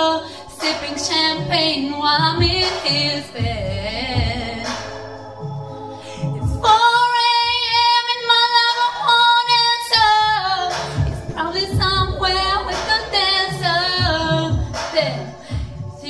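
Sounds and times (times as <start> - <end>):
woman singing: 0.0 - 5.1, 6.1 - 16.0
low thumping beat: 0.6 - 7.8, 9.9 - 16.0.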